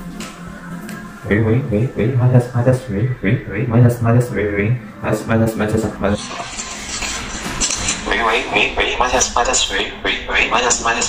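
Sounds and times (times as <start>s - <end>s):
person speaking: 1.2s - 6.5s.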